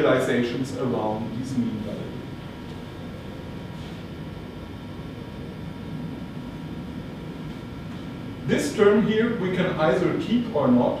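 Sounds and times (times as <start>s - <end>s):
ventilation hum and hiss: 0.0s - 11.0s.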